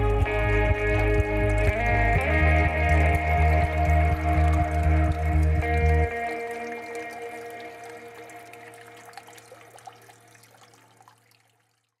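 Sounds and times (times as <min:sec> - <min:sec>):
held music notes: 0:00.0 - 0:09.0
water trickling and dripping: 0:00.0 - 0:12.0.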